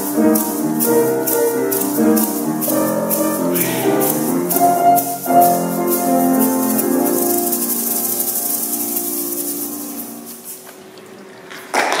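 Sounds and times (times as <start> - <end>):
hand shakers rattling: 0.0 - 10.8
choir holding chord: 3.5 - 5.3
applause: 11.7 - 12.0.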